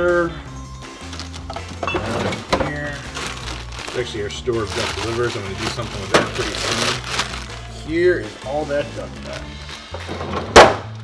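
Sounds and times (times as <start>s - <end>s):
plastic bags rustling: 1.0s - 10.0s.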